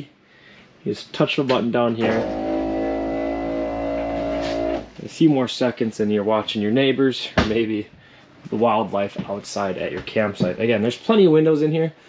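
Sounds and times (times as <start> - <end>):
electric motor humming: 2.0 - 4.9.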